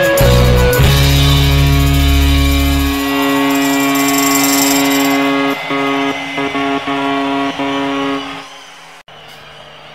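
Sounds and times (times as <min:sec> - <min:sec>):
band chord ringing: 0:00.0 - 0:08.2.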